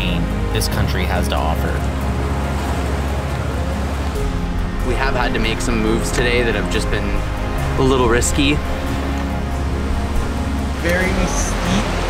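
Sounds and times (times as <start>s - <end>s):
background music with deep bass: 0.0s - 12.0s
whitewater rushing: 0.0s - 12.0s.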